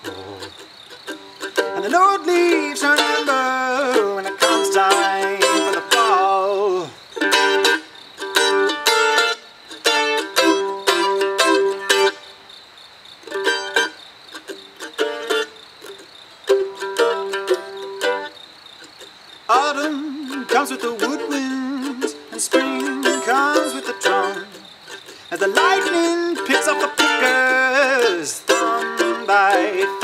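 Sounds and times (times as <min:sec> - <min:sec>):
mandolin strumming: 0:00.0 - 0:12.4, 0:13.2 - 0:30.0.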